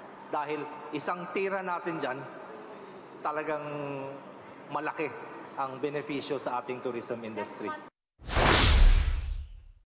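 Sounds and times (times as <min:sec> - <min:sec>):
whoosh sound effect: 0:08.2 - 0:09.8.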